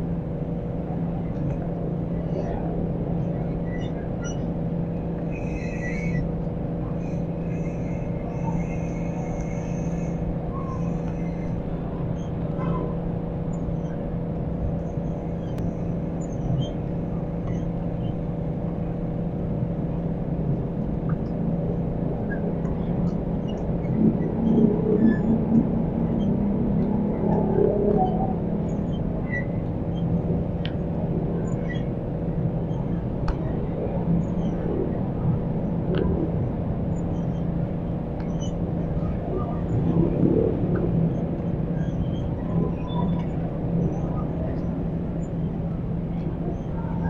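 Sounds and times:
street traffic rumble: 0.0 - 47.0.

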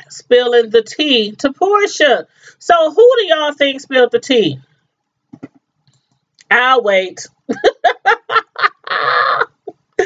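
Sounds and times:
woman laughing: 7.5 - 10.0.

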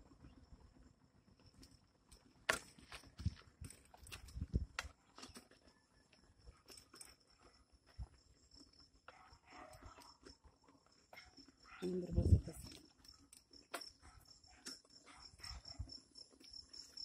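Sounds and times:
footsteps on brick road: 2.5 - 6.2.

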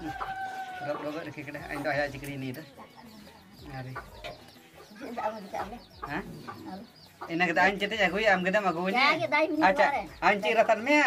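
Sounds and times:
chickens clucking: 0.0 - 11.0
loud talking: 3.6 - 11.0.

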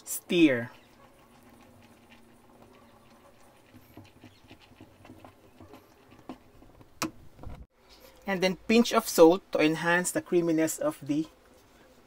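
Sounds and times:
utensil tapping and scraping saucepan: 0.7 - 7.5.

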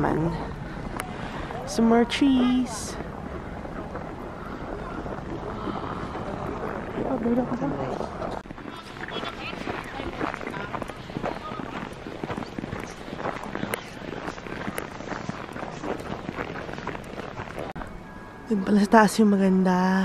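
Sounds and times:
people's voices: 0.0 - 17.7
footsteps crunching on snow: 0.8 - 17.9.

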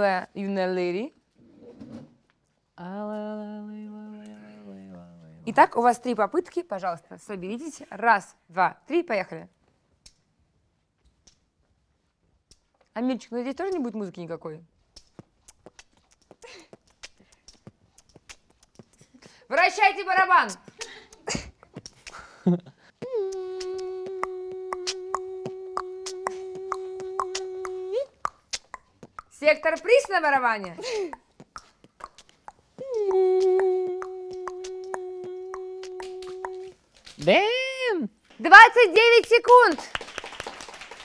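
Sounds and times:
short vocal sound: 20.5 - 29.3, 30.8 - 36.8
person humming a long note: 23.0 - 28.1, 32.8 - 36.8.

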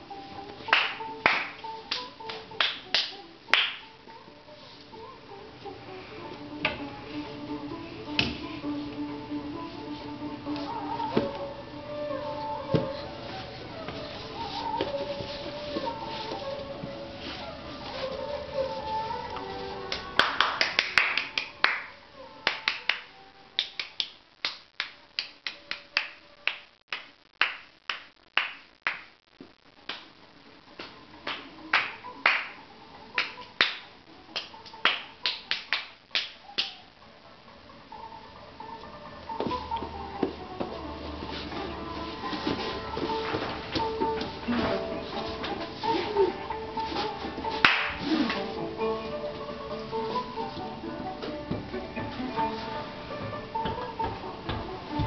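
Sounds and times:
music playing in a room: 0.0 - 55.0
sharp snaps: 19.9 - 30.2, 33.2 - 36.8.

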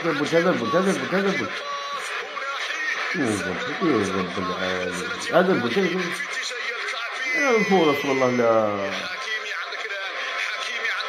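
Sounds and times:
man talking quietly: 3.1 - 6.2
man vocalising excitedly: 3.1 - 6.2, 7.4 - 9.1.

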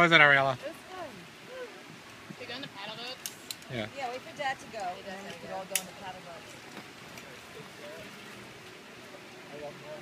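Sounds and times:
quiet outdoor ambience: 0.0 - 10.0.

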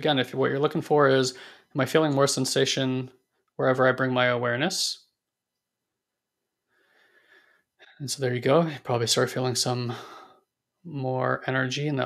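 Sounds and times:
faint breath in: 1.4 - 1.7, 6.7 - 8.0, 9.9 - 10.5.

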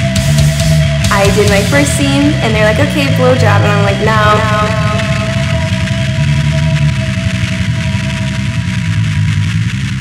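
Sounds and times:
loud low drone: 0.0 - 10.0.

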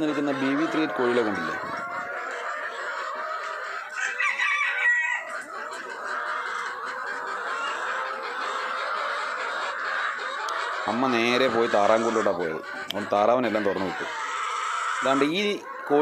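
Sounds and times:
hens clucking and calling: 0.0 - 16.0.

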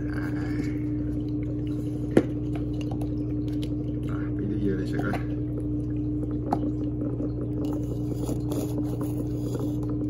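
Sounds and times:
aquarium pump humming: 0.0 - 10.0.

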